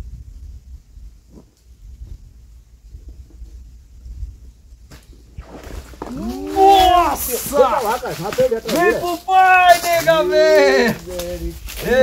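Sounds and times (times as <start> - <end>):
man shouting loudly: 6.1 - 11.2, 11.8 - 12.0.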